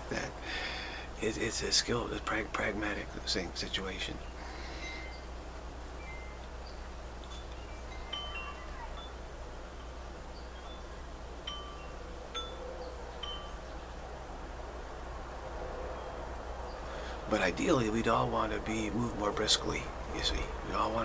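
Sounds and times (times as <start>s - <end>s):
steady low hum: 0.0s - 21.0s
wind chimes ringing: 4.6s - 5.3s, 6.0s - 13.8s.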